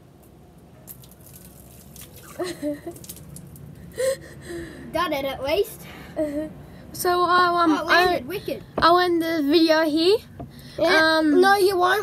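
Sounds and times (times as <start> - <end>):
water splashing: 0.9 - 3.7.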